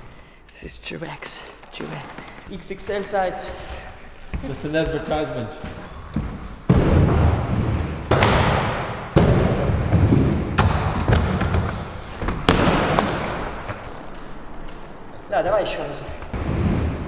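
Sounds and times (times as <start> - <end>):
inline skate wheels rolling on concrete: 1.7 - 17.0
hard thuds: 3.5 - 13.9.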